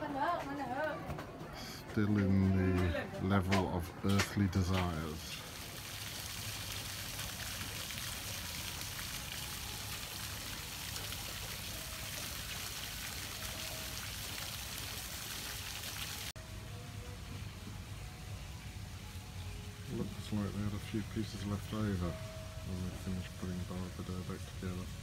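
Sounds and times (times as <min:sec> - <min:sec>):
fountain water splashing: 0:04.2 - 0:16.4, 0:18.7 - 0:25.0.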